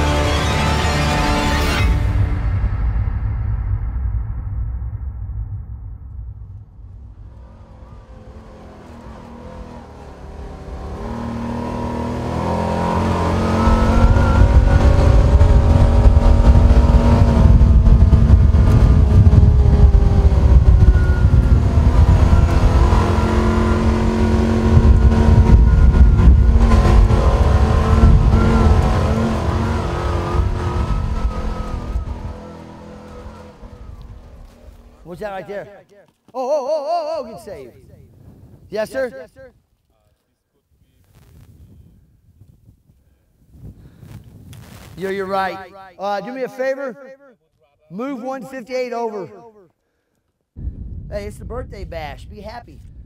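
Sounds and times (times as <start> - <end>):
vehicle engine revving: 0.0 - 2.8, 5.8 - 35.2.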